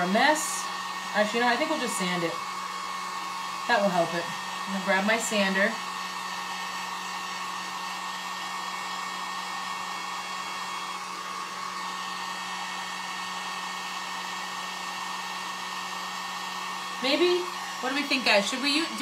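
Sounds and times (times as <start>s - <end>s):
heat gun blowing air: 0.0s - 19.0s.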